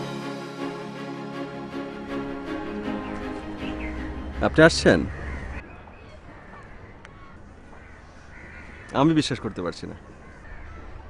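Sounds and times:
faint bird calls: 3.0s - 11.0s.

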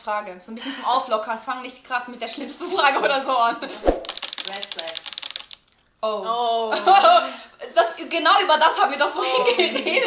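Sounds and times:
rapid typewriter clicking: 4.0s - 5.6s.

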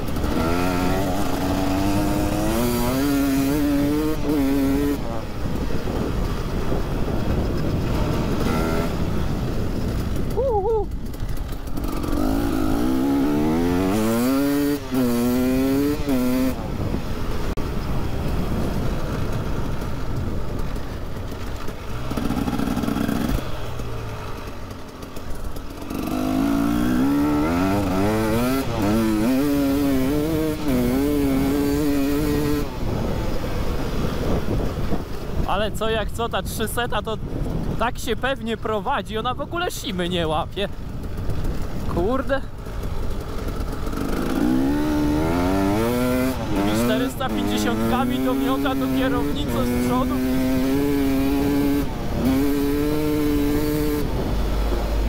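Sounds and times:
two-stroke motorcycle engine revving: 0.0s - 35.6s, 38.5s - 55.0s.

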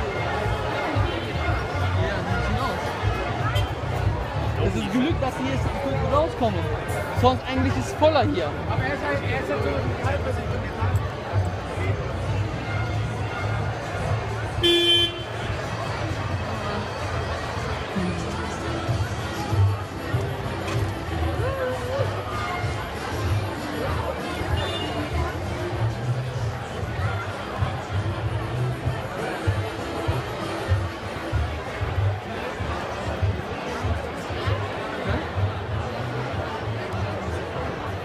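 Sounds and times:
busy street crowd: 0.0s - 38.0s
loud horn blast: 14.6s - 15.5s.

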